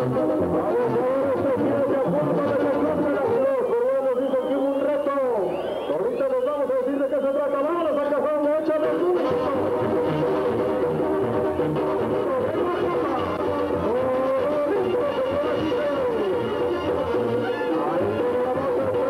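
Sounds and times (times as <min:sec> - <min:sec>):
brass band music: 0:00.0 - 0:03.8, 0:07.8 - 0:19.0
person speaking: 0:12.2 - 0:16.7.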